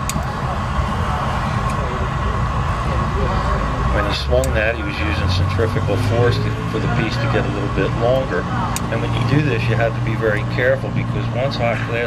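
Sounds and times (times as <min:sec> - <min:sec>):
constant hum: 0:00.0 - 0:12.0
gas burners roaring: 0:00.0 - 0:12.0.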